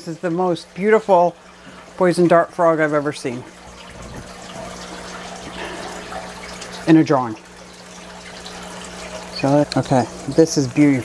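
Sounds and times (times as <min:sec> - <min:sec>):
low electrical hum: 0:00.0 - 0:11.0
trickling running water: 0:00.0 - 0:11.0.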